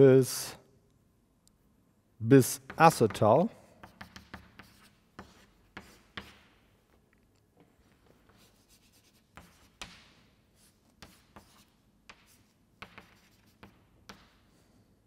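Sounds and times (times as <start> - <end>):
chalk writing on a chalkboard: 2.7 - 6.7, 7.8 - 14.6.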